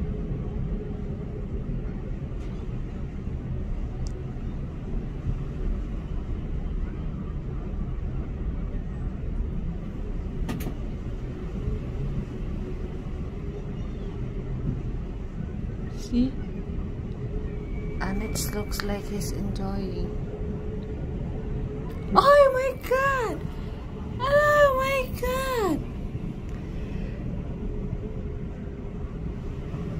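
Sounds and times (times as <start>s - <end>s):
faint steady hum: 0.0s - 29.9s.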